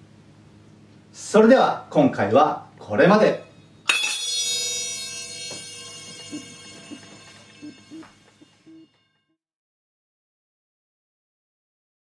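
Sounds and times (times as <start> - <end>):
hand cymbals ringing: 3.4 - 9.2.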